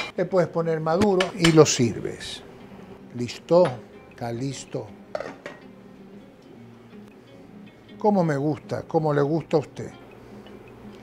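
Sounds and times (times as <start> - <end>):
kitchenware clinking: 5.1 - 5.7.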